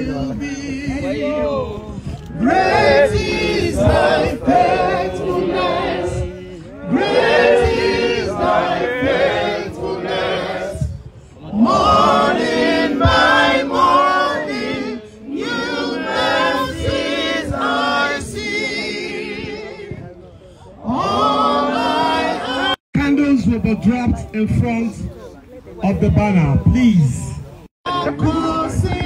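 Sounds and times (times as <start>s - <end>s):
crowd singing in chorus: 0.0s - 22.8s, 27.8s - 29.0s.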